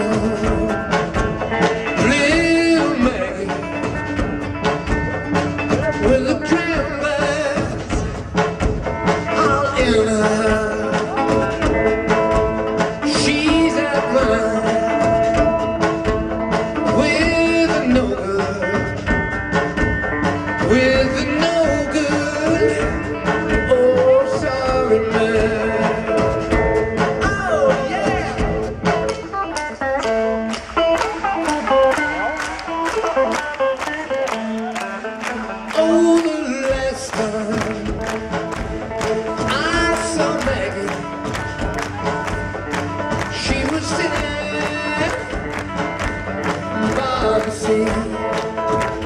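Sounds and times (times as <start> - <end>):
drum kit beat: 0.0 - 49.0
guitar: 0.0 - 49.0.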